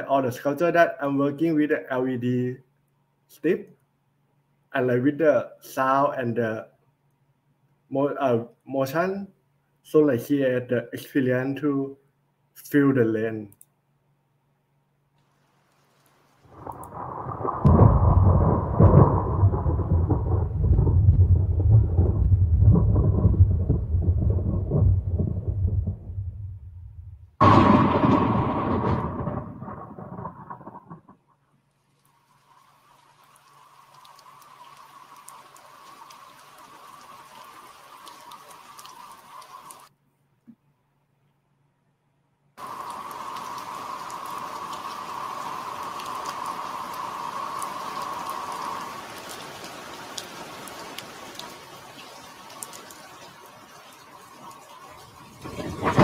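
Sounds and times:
steady rain-like hiss: 0:00.0 - 0:02.6, 0:03.2 - 0:06.8, 0:07.4 - 0:13.4, 0:15.0 - 0:26.7, 0:31.5 - 0:40.0, 0:42.6 - 0:56.0
deep thunder-like rumble: 0:16.6 - 0:31.2, 0:55.3 - 0:56.0.

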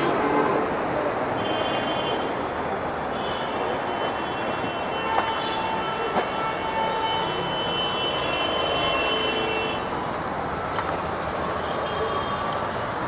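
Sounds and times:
busy street traffic: 0:00.0 - 0:13.0.

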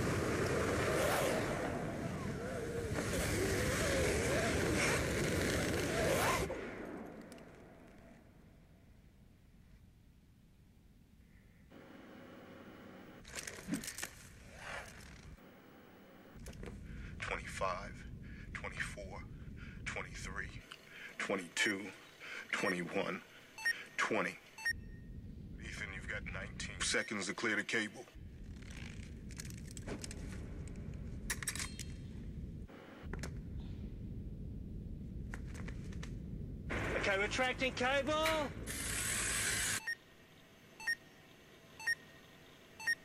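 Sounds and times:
faint steady hum: 0:06.9 - 0:43.0
low rumble: 0:16.4 - 0:20.6, 0:24.8 - 0:26.9, 0:28.2 - 0:38.9
sharp clicks and crackles: 0:28.3 - 0:32.2, 0:35.2 - 0:36.2.

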